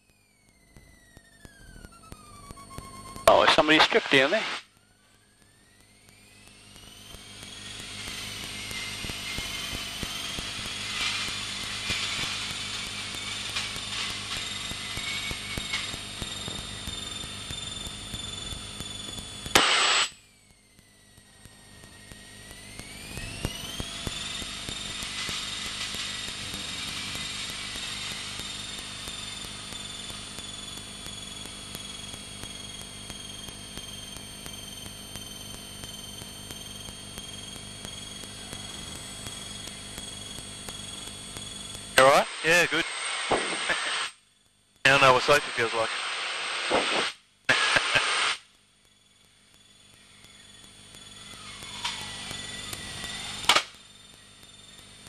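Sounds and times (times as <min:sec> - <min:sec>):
light aircraft engine droning: 0:00.0 - 0:19.5, 0:20.2 - 0:43.8, 0:48.9 - 0:55.0
loud burst: 0:03.3 - 0:04.6, 0:19.5 - 0:20.2, 0:42.0 - 0:44.2, 0:44.9 - 0:48.5.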